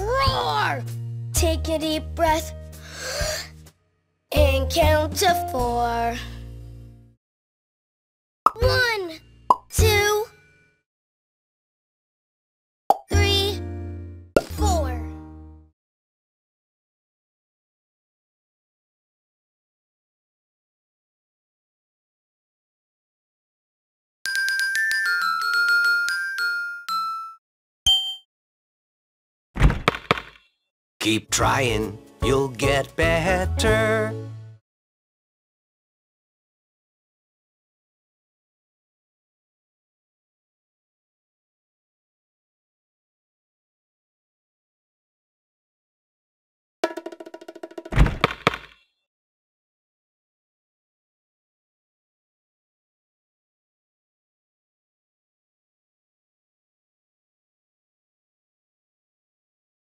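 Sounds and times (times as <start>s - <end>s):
bright chiming game sound effect: 24.3s - 28.2s.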